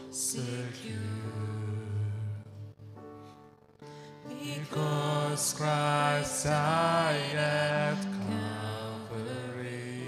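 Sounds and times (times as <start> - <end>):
congregation singing a hymn: 0.0 - 2.4, 4.3 - 10.0.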